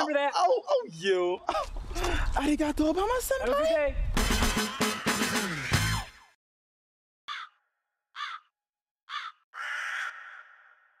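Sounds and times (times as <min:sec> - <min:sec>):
bird calling: 0:07.3 - 0:07.6, 0:08.2 - 0:08.5, 0:09.1 - 0:10.9.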